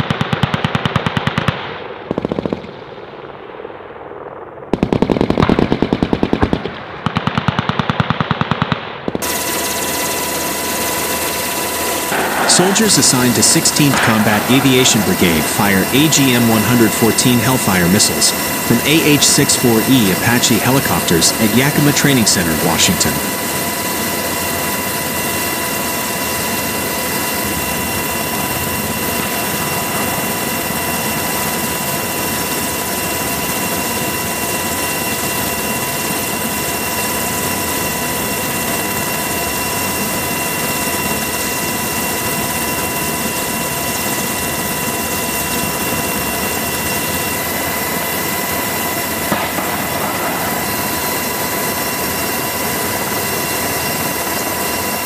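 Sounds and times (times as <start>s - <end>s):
helicopter rotor rush: 0.0s - 2.8s, 4.7s - 55.0s
high turbine whine: 9.0s - 55.0s.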